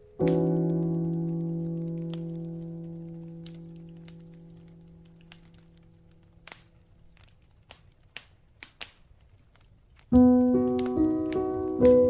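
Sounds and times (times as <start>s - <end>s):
faint clicks and crackles: 0.0s - 12.0s.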